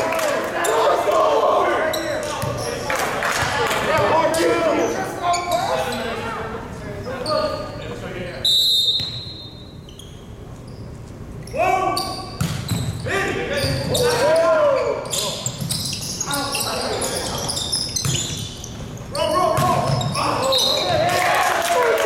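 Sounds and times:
players shouting: 0.0 - 2.8, 13.0 - 15.1, 19.2 - 22.0
sneakers squeaking on floor: 1.8 - 6.3, 7.0 - 21.0.

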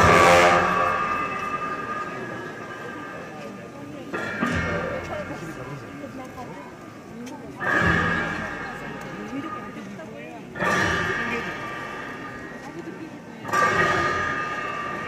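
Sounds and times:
cymbals crashing: 0.0 - 6.0, 10.5 - 15.0.

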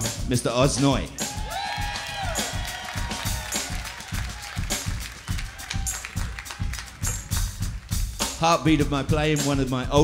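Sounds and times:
band playing drums and bass: 0.0 - 10.0
audience applause: 1.5 - 8.2.

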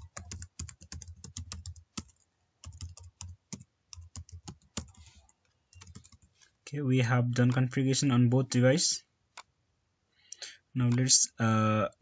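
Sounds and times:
typing on computer keyboard: 0.0 - 6.3.

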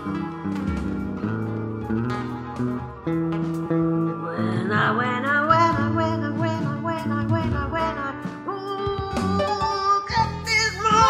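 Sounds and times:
gliding melody line: 0.0 - 10.6
backing arrangement: 0.0 - 11.0
plucked electric bass guitar: 0.0 - 11.0.

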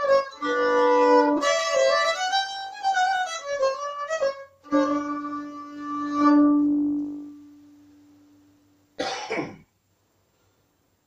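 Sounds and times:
man clearing throat: 9.0 - 9.7.

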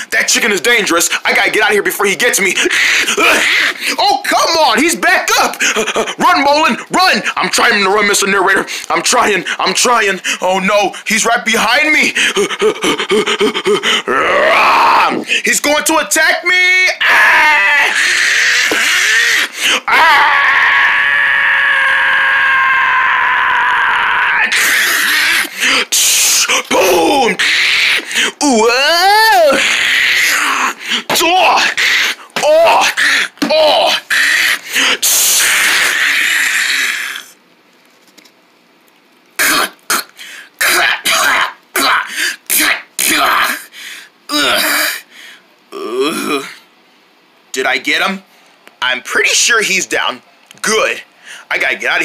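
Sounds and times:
person making squawk-like cries: 2.5 - 4.2, 16.9 - 37.3
man's long strained cry: 12.2 - 15.3, 17.0 - 37.3
man making short vocal bursts: 24.6 - 29.7, 39.4 - 43.7, 44.3 - 45.1.

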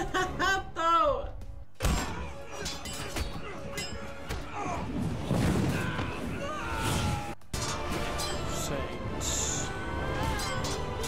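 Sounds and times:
action scene music: 0.0 - 11.0.

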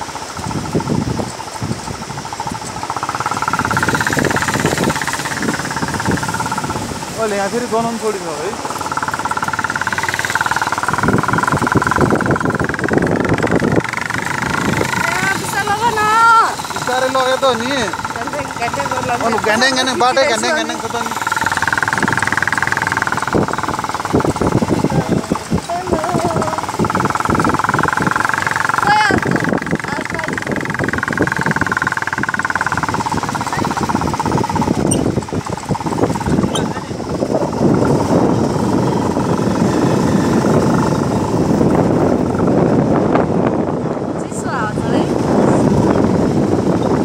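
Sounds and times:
rumbling from bumpy ride: 0.0 - 47.0
vehicle engine whining: 0.0 - 47.0
wind on microphone: 0.0 - 47.0
knocks and rattles: 0.2 - 7.2, 8.4 - 42.5.

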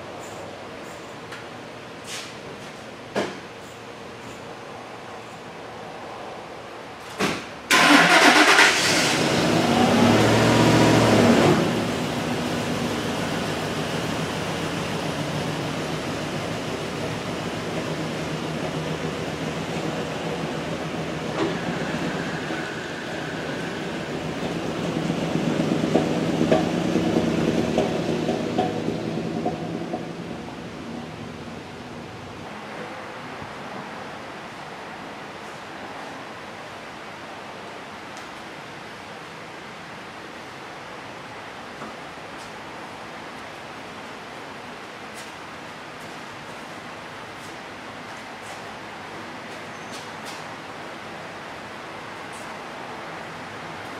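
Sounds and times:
truck engine cranking and idling: 7.7 - 30.8
truck pulling away: 7.7 - 31.0.

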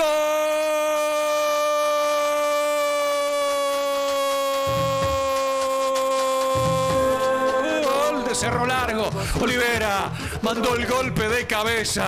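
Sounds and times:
commentator's long goal cry: 0.0 - 8.7
low beats: 4.7 - 12.0.

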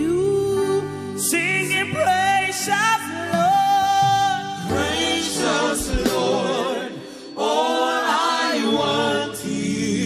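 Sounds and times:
woman singing gospel lead: 0.0 - 8.7
backing singers: 4.5 - 10.0.

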